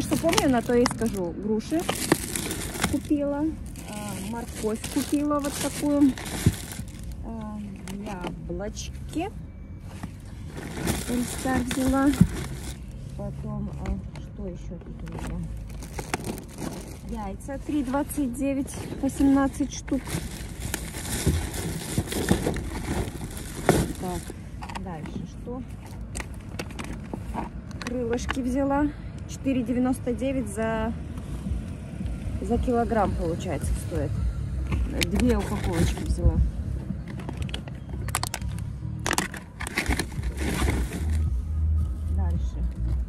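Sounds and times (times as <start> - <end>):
plastic packaging crinkling: 0.0 - 8.3, 10.4 - 13.0, 15.5 - 17.3, 19.0 - 24.4, 37.5 - 41.3
wind rumbling on microphone: 30.9 - 43.0.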